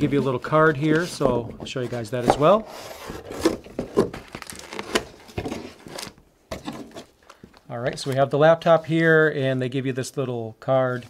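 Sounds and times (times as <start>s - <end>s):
plastic film crinkling: 3.4s - 6.2s.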